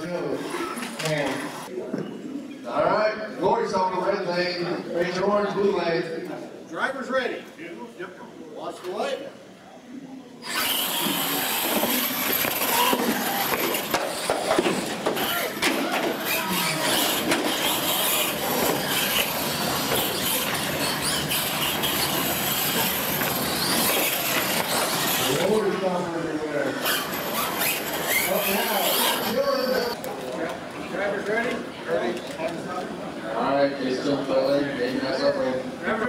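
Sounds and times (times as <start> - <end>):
electric motors whining: 10.4 - 30.0.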